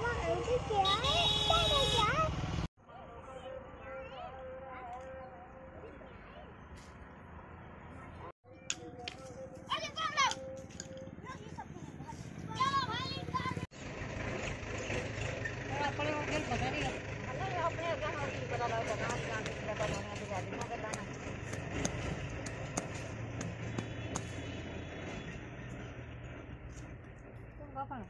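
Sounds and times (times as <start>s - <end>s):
vehicle engine humming: 0.0s - 28.0s.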